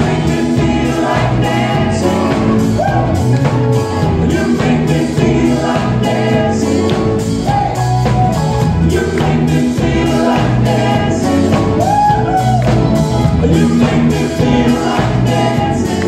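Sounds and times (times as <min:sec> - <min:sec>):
man singing lead vocal: 0:00.0 - 0:12.6, 0:13.3 - 0:16.0
keyboards: 0:00.0 - 0:16.0
steady drum beat: 0:00.0 - 0:16.0.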